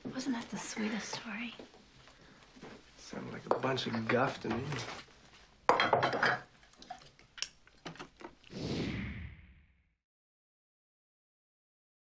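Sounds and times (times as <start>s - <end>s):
dishes and cutlery clattering: 5.7s - 7.1s
soft rushing swell: 8.5s - 9.8s.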